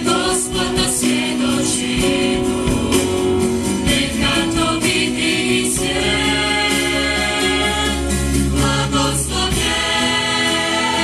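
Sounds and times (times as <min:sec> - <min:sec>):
choir singing: 0:00.0 - 0:11.0
guitar: 0:00.0 - 0:11.0
sharp percussion beats: 0:00.0 - 0:11.0.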